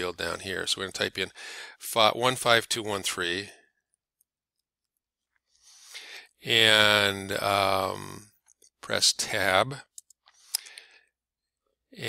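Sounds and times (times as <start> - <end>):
soft breath: 1.4 - 1.8.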